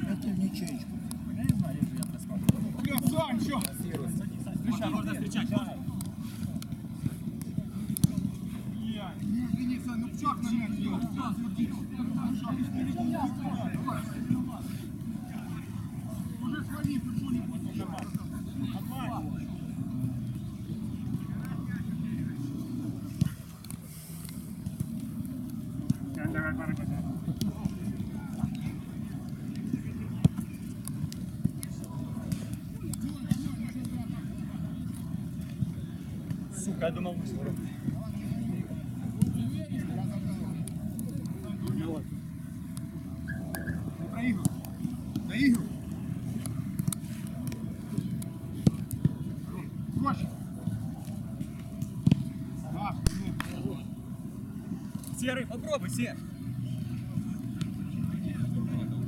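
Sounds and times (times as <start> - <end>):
ball being kicked: 53.0 - 53.6.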